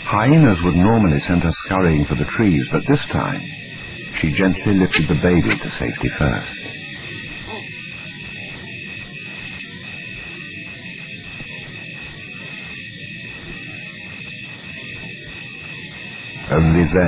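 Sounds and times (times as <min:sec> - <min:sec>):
night insects chorus: 0:00.0 - 0:17.0.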